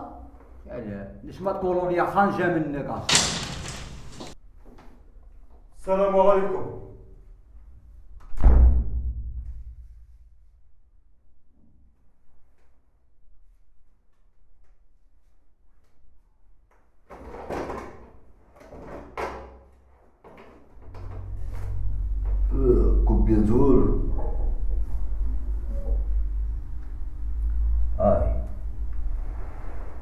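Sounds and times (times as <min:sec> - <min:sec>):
door opening rush: 0:03.0 - 0:04.4
door click: 0:03.1 - 0:04.4.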